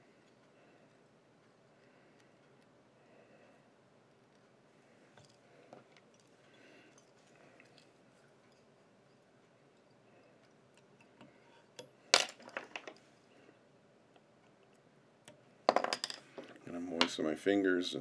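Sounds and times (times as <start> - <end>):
low room noise: 0.0 - 18.0.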